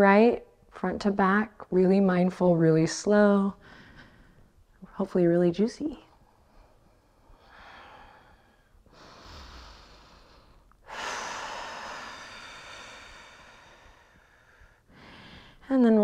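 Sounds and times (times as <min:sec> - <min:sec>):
deep human breathing: 0:03.6 - 0:04.7, 0:06.2 - 0:15.7.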